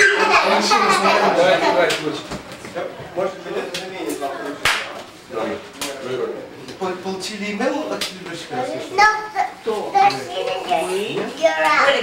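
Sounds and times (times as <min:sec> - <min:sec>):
people talking in a room: 0:00.0 - 0:12.0
sharp smack: 0:04.6 - 0:04.9.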